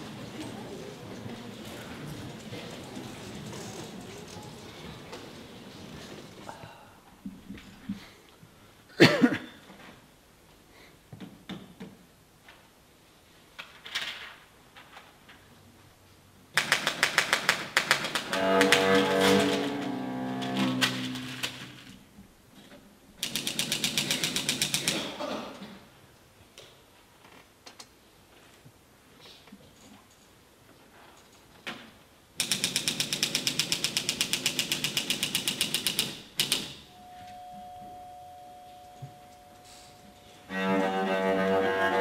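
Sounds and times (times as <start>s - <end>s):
typewriter keys striking: 23.2s - 25.0s
music with sustained strings: 40.5s - 42.0s.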